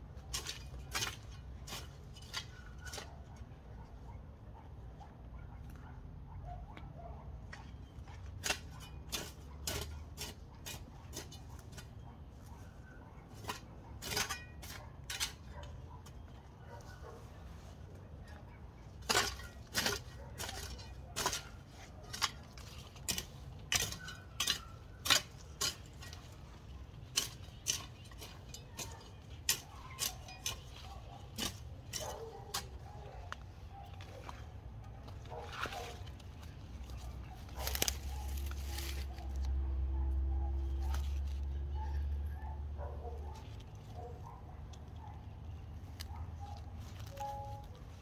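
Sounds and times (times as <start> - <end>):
metal hoe chopping into soil: 0.1 - 3.1, 8.3 - 12.0, 13.3 - 15.5, 19.0 - 32.9, 35.2 - 39.4.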